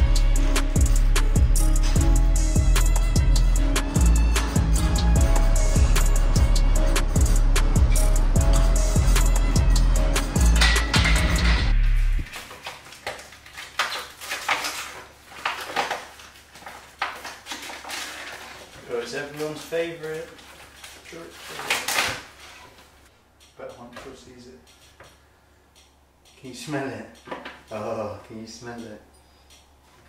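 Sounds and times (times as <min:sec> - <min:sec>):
music with heavy bass beat: 0:00.0 - 0:12.3.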